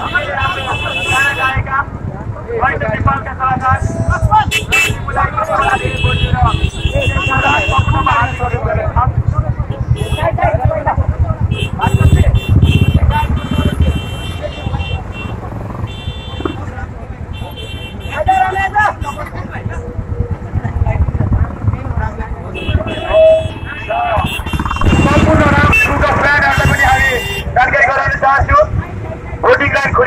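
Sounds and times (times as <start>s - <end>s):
horns sounding: 0.0s - 1.6s, 4.3s - 8.8s, 9.7s - 10.5s, 11.4s - 19.4s, 22.4s - 27.7s
crowd voices: 0.0s - 30.0s
motorcycle engines at low speed: 0.0s - 30.0s.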